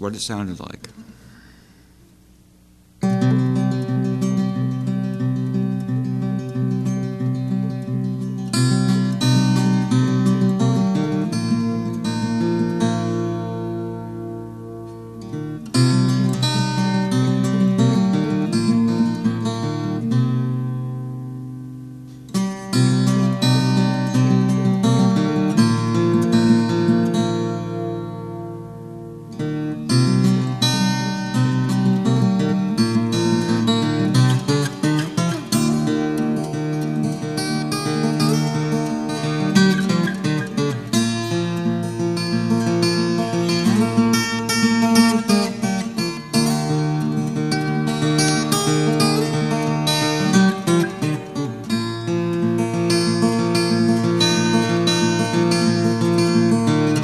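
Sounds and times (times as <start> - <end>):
acoustic guitar picking: 0.0 - 57.0.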